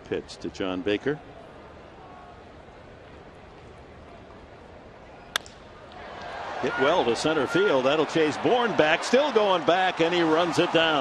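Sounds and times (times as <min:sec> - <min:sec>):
bat cracking on baseball: 0:05.3 - 0:06.4.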